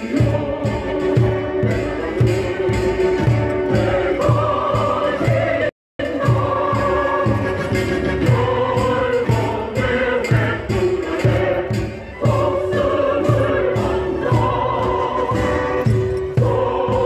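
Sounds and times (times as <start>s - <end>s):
many voices singing together: 0.0s - 17.0s.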